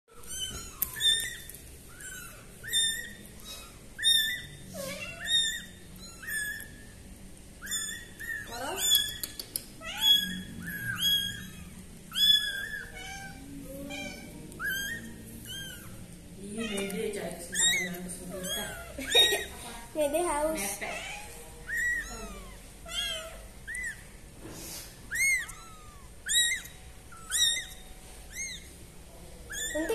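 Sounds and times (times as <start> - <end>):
kittens mewing: 0.2 - 19.9, 20.6 - 24.4, 25.0 - 29.9.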